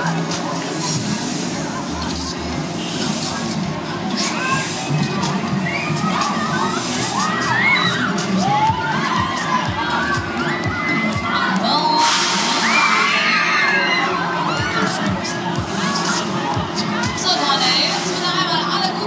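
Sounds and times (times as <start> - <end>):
riders screaming and shouting: 4.2 - 17.6
hiss: 12.0 - 12.8.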